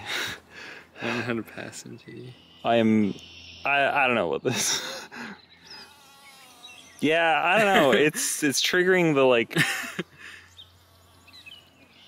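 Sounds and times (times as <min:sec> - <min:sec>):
bee buzzing: 0:04.8 - 0:08.8, 0:10.2 - 0:11.9.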